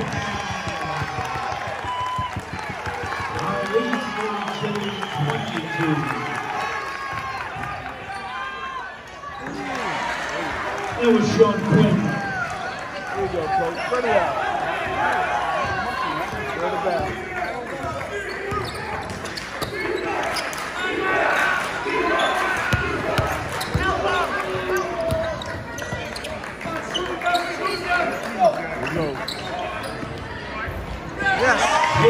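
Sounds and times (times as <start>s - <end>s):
voices of players and spectators: 0.0s - 32.0s.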